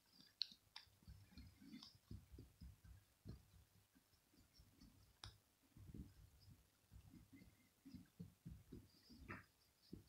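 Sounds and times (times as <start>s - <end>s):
hand stroking cat fur: 0.0s - 10.0s.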